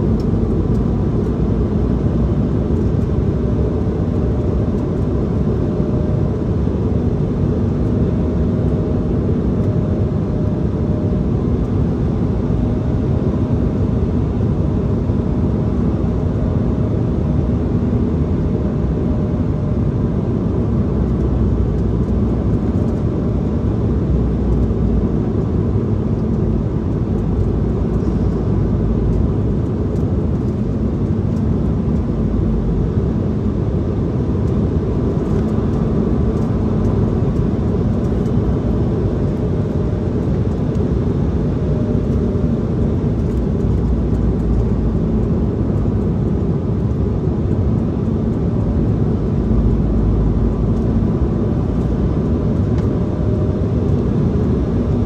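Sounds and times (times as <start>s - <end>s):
jet engine drone: 0.0s - 55.0s.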